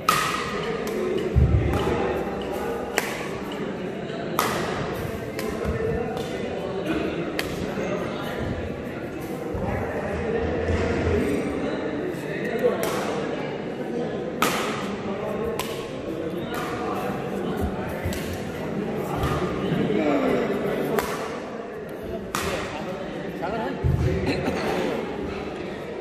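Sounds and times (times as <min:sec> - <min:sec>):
racket striking shuttlecock: 0:00.0 - 0:02.0, 0:02.8 - 0:03.6, 0:04.3 - 0:06.4, 0:14.4 - 0:16.8, 0:20.9 - 0:21.4, 0:22.2 - 0:22.8
murmur of spectators' voices: 0:00.0 - 0:26.0.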